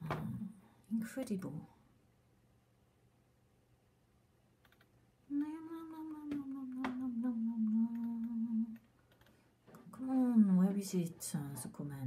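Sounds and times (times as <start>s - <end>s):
faint clicks: 4.6s - 5.0s, 5.8s - 9.9s
woman humming low note: 5.3s - 8.8s.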